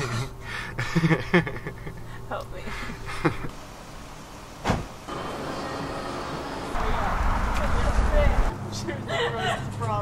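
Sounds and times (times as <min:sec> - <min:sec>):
steady background hum: 0:00.0 - 0:06.8
truck door shutting: 0:04.6 - 0:05.0.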